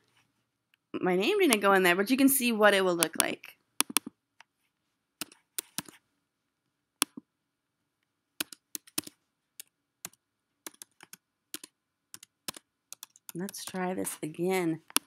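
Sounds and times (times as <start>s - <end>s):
typing on computer keyboard: 8.4s - 13.9s.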